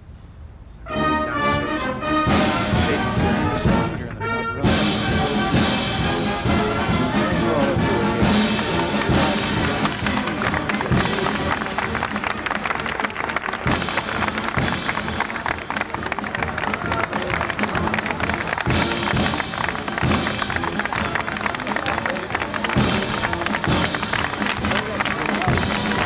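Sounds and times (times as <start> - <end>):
brass band playing: 0.8 - 26.0
crowd chatter: 0.8 - 26.0
people clapping: 5.5 - 26.0.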